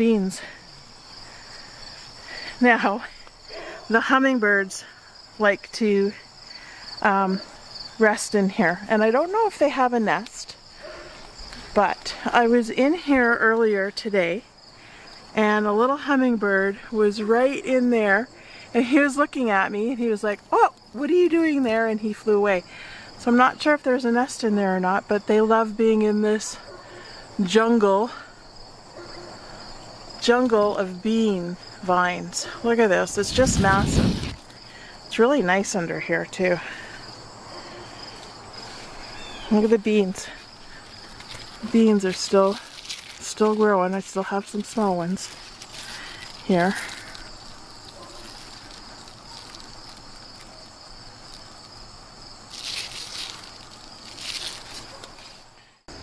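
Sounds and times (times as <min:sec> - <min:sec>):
insects singing: 0:00.0 - 0:56.0
leaves rustling: 0:06.1 - 0:13.9, 0:28.3 - 0:56.0.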